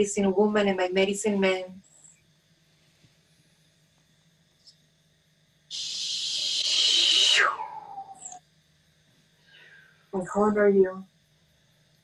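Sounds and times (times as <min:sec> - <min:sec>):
woman blowing out breath: 0:05.8 - 0:08.2.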